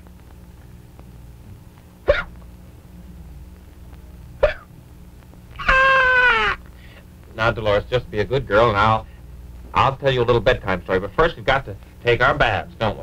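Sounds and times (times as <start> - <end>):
whining cry: 2.1 - 2.4, 5.6 - 6.6
puppet squeaks: 5.6 - 6.6.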